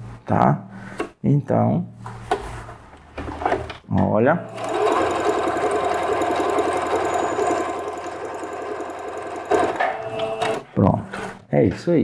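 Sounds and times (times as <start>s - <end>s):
sewing machine stitching: 4.4s - 10.7s.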